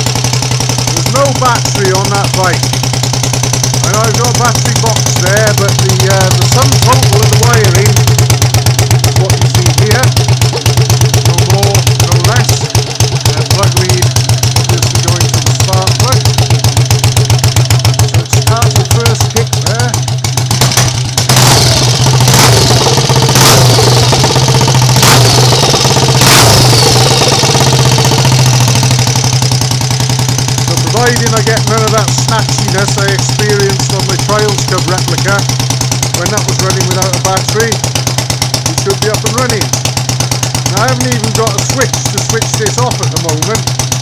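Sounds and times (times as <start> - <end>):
motorcycle engine idling: 0.0 - 44.0.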